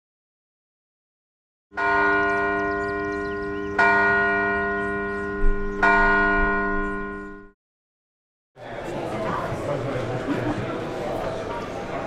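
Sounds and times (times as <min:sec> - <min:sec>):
church bell ringing: 0:01.7 - 0:07.6.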